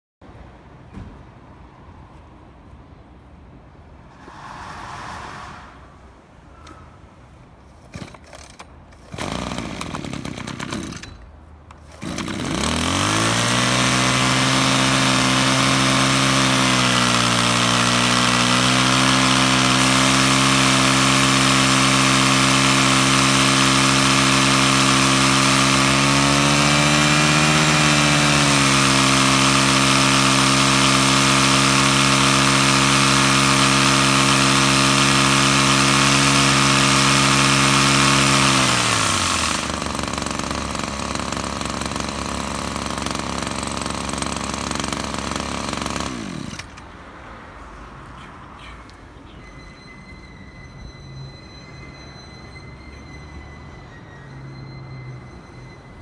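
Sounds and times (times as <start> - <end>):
small two-stroke engine running: 7.8 - 46.9.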